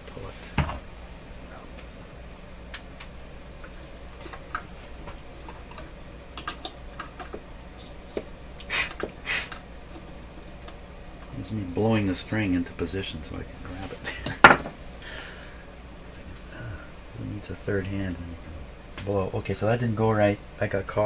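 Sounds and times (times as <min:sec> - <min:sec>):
short puffs of breath: 0:08.7 - 0:09.6.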